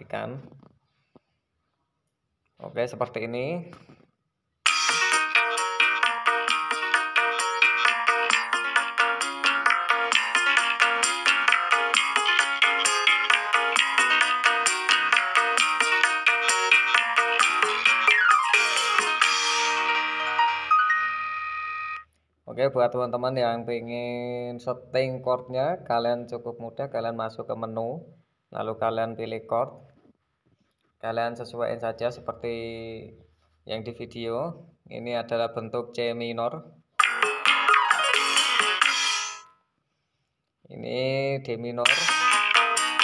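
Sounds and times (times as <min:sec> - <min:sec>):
electronic organ chord: 0:04.7 - 0:22.0.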